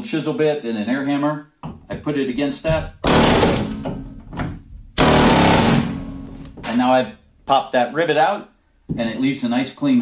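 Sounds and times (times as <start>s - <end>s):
pneumatic air hammer strikes: 3.0s - 4.0s, 5.0s - 6.3s.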